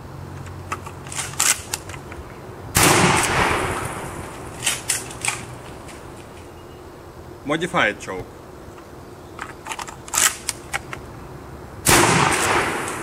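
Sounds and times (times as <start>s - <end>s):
gun handling clicks: 0.4s - 2.2s, 4.6s - 5.5s, 8.8s - 11.0s
shotgun blast: 2.8s - 4.1s, 11.8s - 13.0s.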